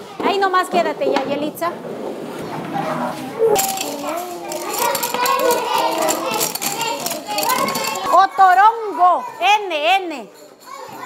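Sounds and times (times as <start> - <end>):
children talking: 0.0 - 1.8, 2.4 - 11.0.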